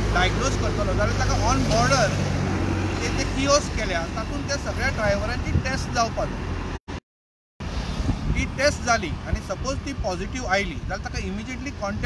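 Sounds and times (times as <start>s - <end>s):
road traffic noise: 0.0s - 7.0s, 7.6s - 12.0s
man speaking: 3.0s - 6.4s, 8.4s - 12.0s.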